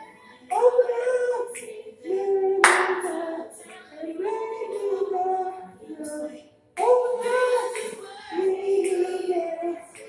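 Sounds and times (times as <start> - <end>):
voices singing held notes: 0.0 - 10.0
loud handclap: 2.6 - 3.4.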